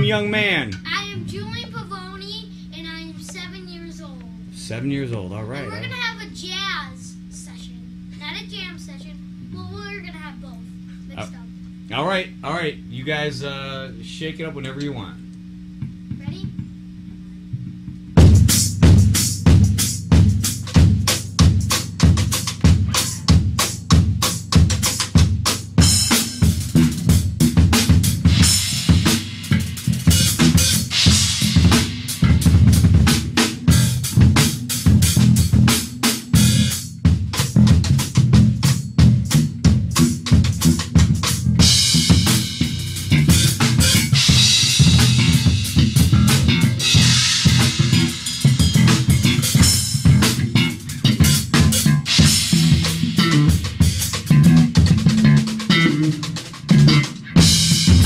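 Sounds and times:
drum kit playing a busy groove: 0.0 - 2.1, 5.6 - 6.6, 17.7 - 58.0
electric bass: 0.0 - 8.2, 9.2 - 58.0
cymbals washing: 18.4 - 58.0.

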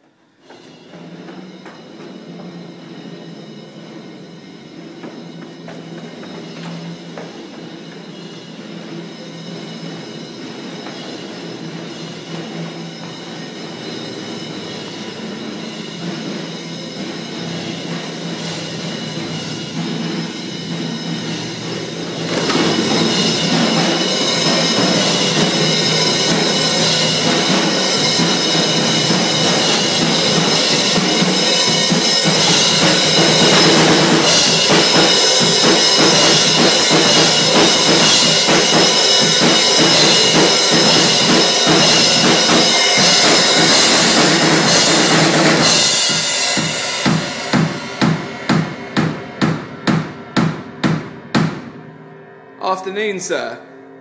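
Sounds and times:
acoustic drum kit beat: 4.9 - 51.9.

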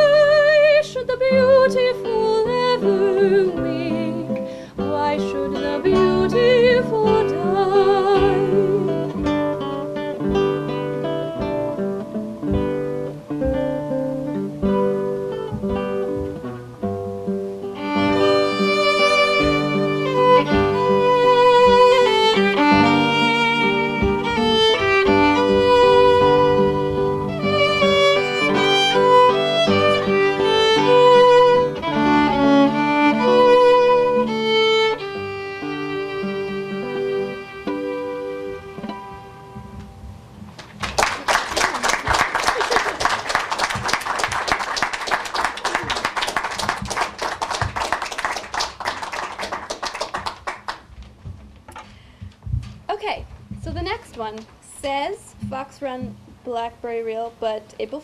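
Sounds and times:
bowed fiddle melody: 0.0 - 40.2
acoustic guitar folk tune: 0.0 - 40.9.

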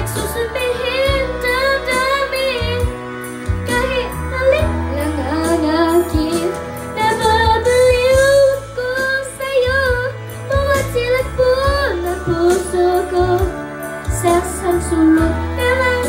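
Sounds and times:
child singing into microphone: 0.0 - 3.0, 3.7 - 16.0
karaoke backing track: 0.0 - 16.0.

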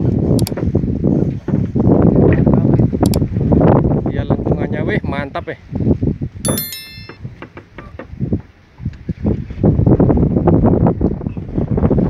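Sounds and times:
wind noise on microphone: 0.0 - 6.6, 7.8 - 12.0
bright bell ding: 6.5 - 7.2.

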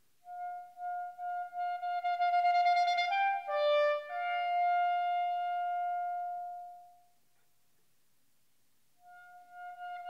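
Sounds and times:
viola and clarinet duo: 0.2 - 7.0, 9.0 - 10.0.

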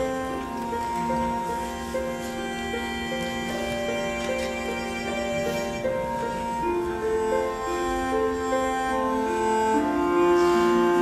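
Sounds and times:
slow orchestral strings: 0.0 - 11.0.

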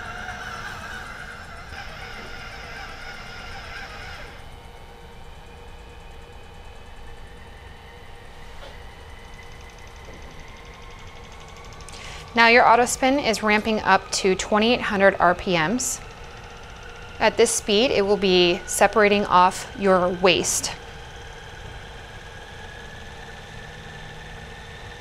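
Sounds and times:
centrifuge humming and whining: 0.0 - 25.0.

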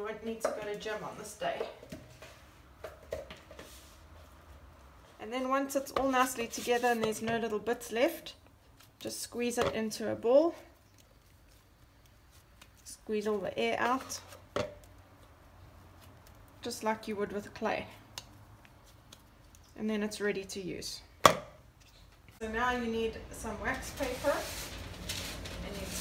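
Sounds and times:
hands kneading dough in bowl: 8.5 - 19.8.

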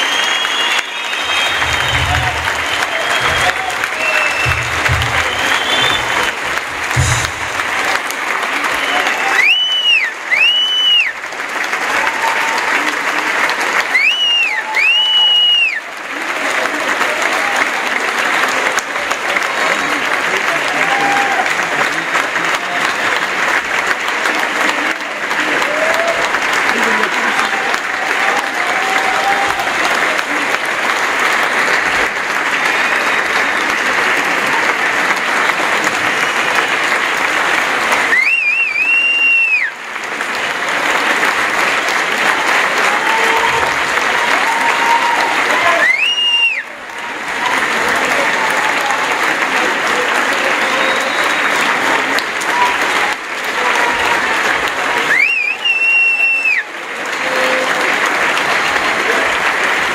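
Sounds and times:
shrill whistle: 0.0 - 6.3, 8.7 - 11.1, 14.0 - 15.8, 38.1 - 39.7, 45.8 - 46.6, 50.7 - 51.6, 55.1 - 56.6
audience applauding: 0.0 - 59.9.

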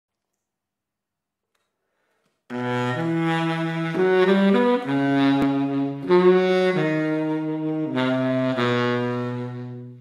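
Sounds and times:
baritone saxophone notes: 2.5 - 10.0.

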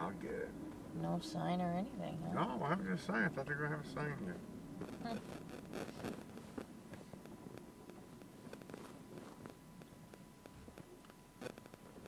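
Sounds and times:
faint steady whine: 0.0 - 12.0.

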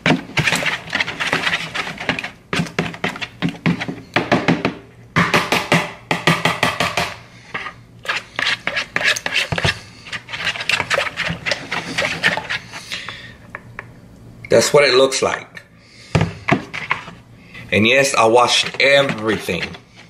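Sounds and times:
spoon beating mix in plastic bowl: 0.0 - 4.8, 7.6 - 13.2, 16.2 - 20.0.

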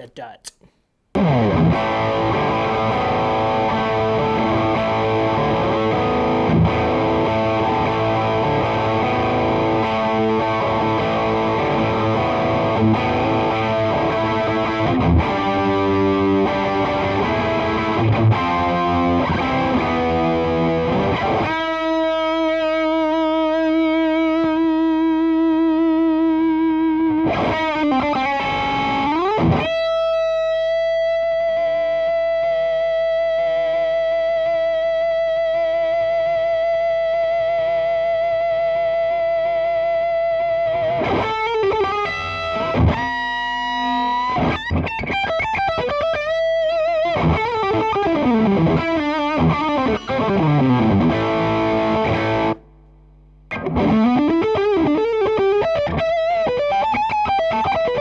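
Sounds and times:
distorted electric guitar lead: 1.2 - 58.0.

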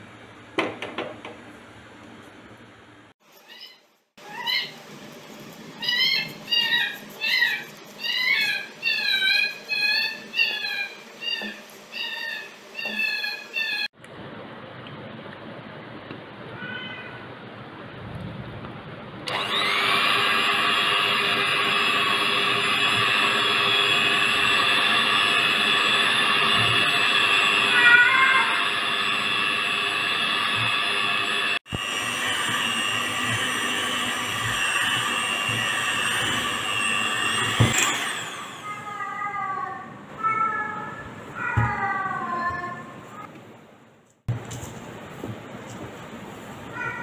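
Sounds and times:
cat meowing: 16.6 - 17.3, 27.7 - 28.5
electric mixer motor whine: 19.2 - 39.0.

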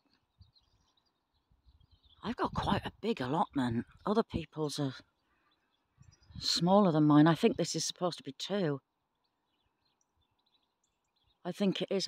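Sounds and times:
faint bird chirping: 0.0 - 12.0.

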